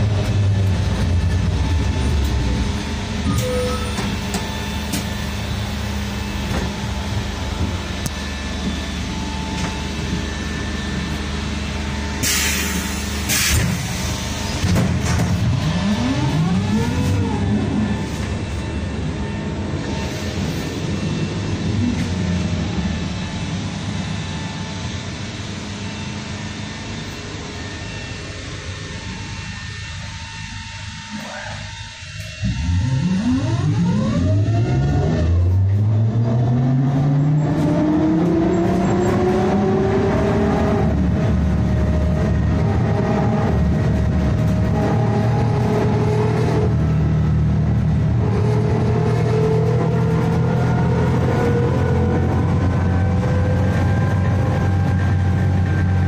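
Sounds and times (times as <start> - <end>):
trolleybus drone: 0.0 - 56.0.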